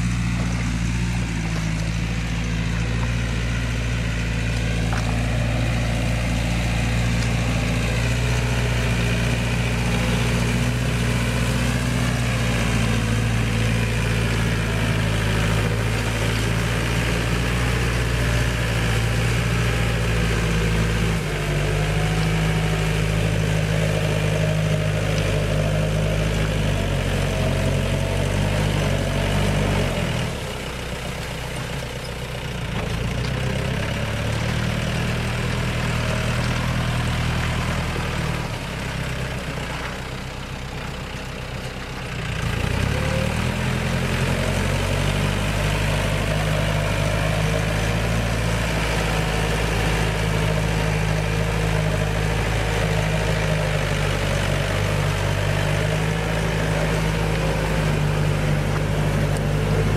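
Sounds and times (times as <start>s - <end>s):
tractor diesel engine under load: 0.0s - 59.9s.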